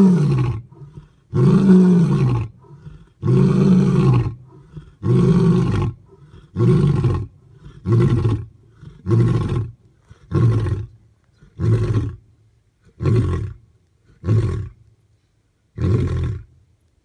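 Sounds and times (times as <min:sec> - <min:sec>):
lion roaring: 0:00.0 - 0:10.9.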